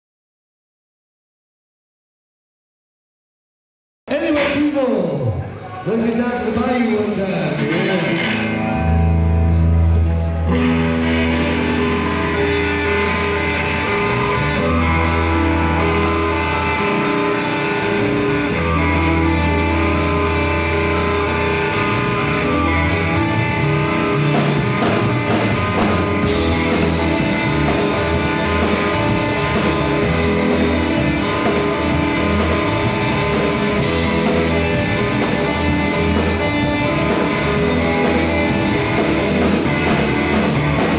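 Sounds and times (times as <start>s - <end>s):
electric guitars: 4.1s - 40.9s
low bass notes: 5.9s - 40.9s.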